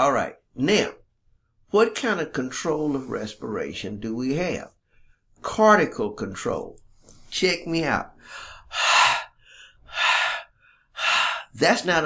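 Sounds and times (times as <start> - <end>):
man breathing forcefully: 8.2 - 11.6.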